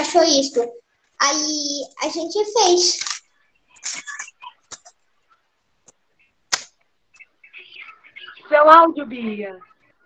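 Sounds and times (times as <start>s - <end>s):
paper rustling and clicking: 2.9s - 3.2s, 6.5s - 6.8s
sharp paper snap: 6.5s - 6.8s.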